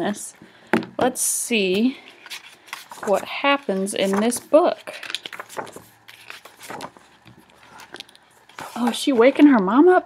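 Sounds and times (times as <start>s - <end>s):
book pages rustling: 1.8s - 9.7s.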